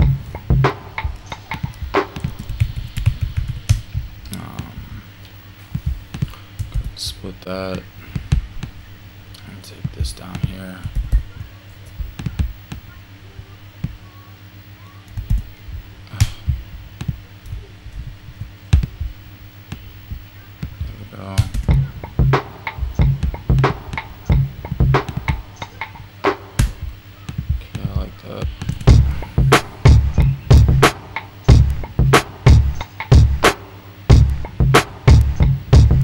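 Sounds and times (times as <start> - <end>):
drum loop: 0.0 - 5.0, 5.7 - 7.0, 9.8 - 12.9, 15.2 - 36.0
deep kick thumps: 15.2 - 17.3, 18.0 - 25.5, 28.7 - 30.9, 31.5 - 33.5, 34.1 - 36.0.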